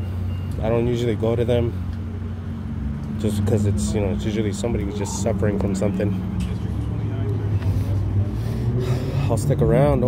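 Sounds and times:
vehicle engine idling: 0:00.0 - 0:10.0
faint voices: 0:03.2 - 0:10.0.

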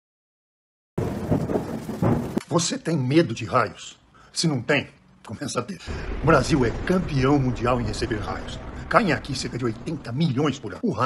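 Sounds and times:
rain falling: 0:01.0 - 0:02.4
thunder rumbling: 0:01.0 - 0:02.4, 0:05.9 - 0:10.8.

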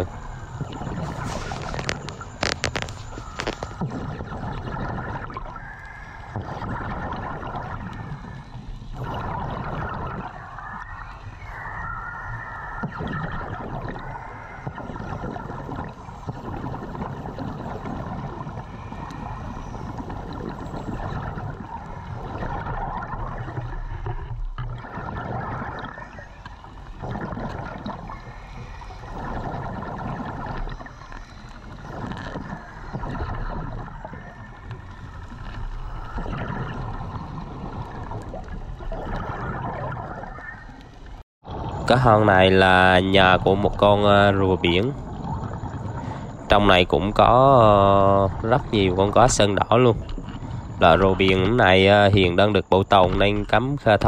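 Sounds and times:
rush of bubbles: 0:00.0 - 0:31.0, 0:31.8 - 0:54.0.

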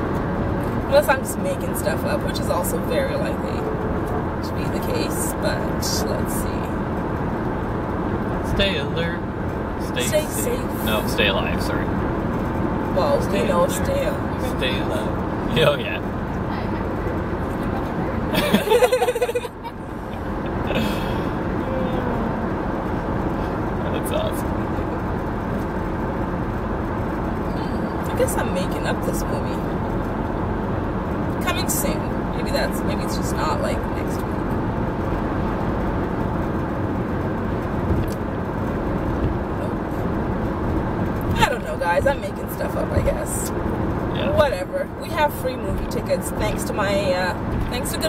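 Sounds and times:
road and engine noise in car: 0:00.0 - 0:48.0
quiet talk: 0:13.0 - 0:18.3, 0:44.2 - 0:44.4.

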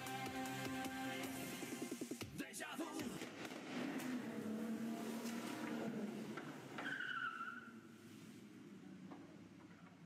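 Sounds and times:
speedboat engine droning: 0:03.9 - 0:06.8.

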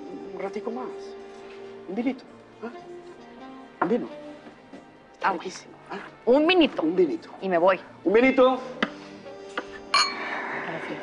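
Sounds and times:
wine glasses clinking: 0:09.9 - 0:10.2.

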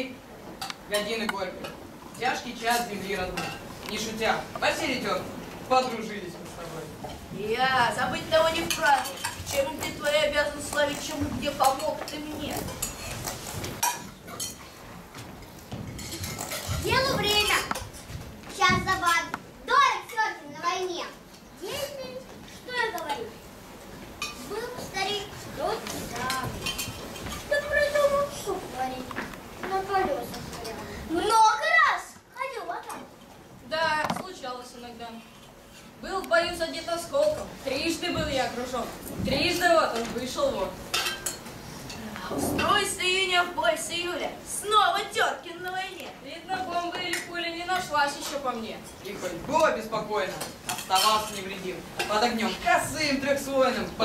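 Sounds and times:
children's voices: 0:16.6 - 0:23.5, 0:24.2 - 0:33.2
spoons clinking on metal bowls: 0:40.9 - 0:41.5, 0:50.6 - 0:52.2.

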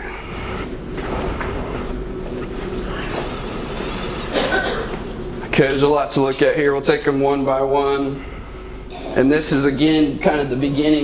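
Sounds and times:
low electrical hum: 0:00.0 - 0:11.0
room noise: 0:00.0 - 0:11.0.

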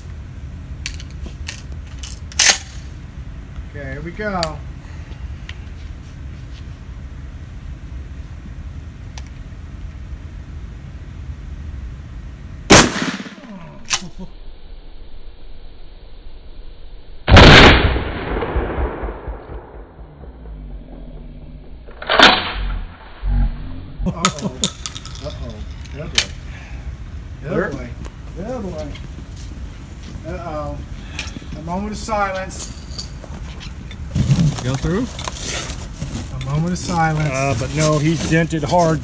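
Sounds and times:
steady low rumble: 0:00.0 - 0:39.0
sharp crack: 0:12.7 - 0:14.2, 0:17.3 - 0:20.9, 0:21.8 - 0:23.0.

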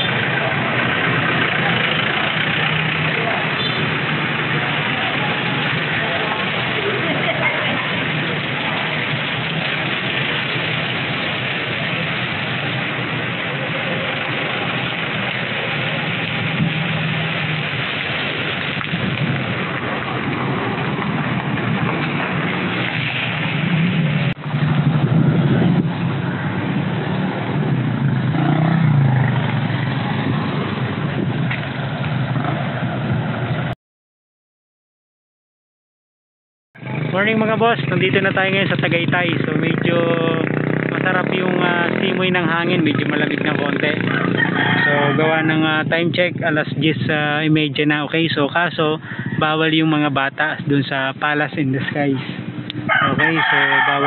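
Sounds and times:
low rumble: 0:07.8 - 0:33.7
wind noise on microphone: 0:15.8 - 0:33.7, 0:49.0 - 0:49.7, 0:51.6 - 0:54.0.

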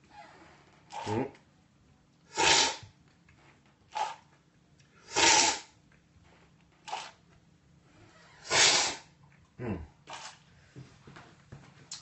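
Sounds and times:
loud hissy coffee slurps: 0:02.3 - 0:02.8, 0:05.1 - 0:05.7, 0:06.9 - 0:07.2, 0:08.4 - 0:09.0.

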